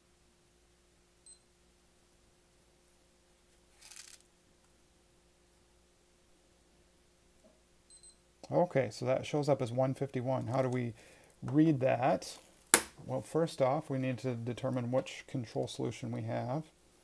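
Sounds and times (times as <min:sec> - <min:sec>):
faint steady hum: 0:00.0 - 0:17.0
glucose meter beeping: 0:01.2 - 0:01.5, 0:07.9 - 0:08.2
hands handling meter rustle: 0:03.8 - 0:04.2.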